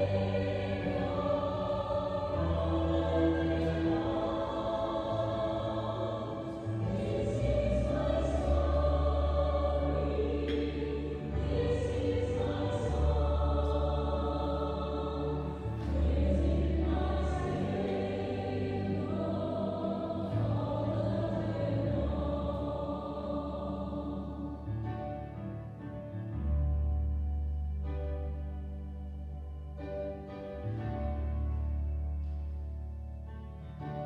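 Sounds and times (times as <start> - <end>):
choir singing a hymn: 0.0 - 27.3.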